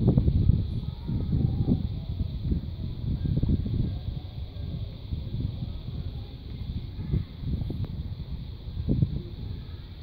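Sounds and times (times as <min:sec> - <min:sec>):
faint steady hiss: 0:00.0 - 0:10.0
wind buffeting microphone: 0:00.0 - 0:10.0.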